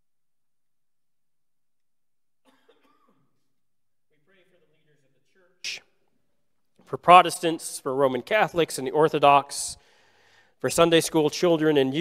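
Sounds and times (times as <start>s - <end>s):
faint cough: 2.4s - 3.6s.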